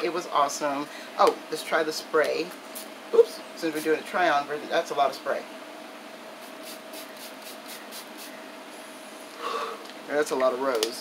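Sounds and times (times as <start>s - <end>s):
faint steady hum: 0.0s - 11.0s
spray bottle spritzing: 6.4s - 8.4s.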